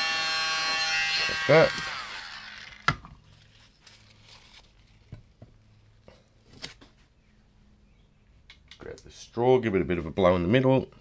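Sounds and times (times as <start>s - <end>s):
mini blower winding down: 0.0s - 3.0s.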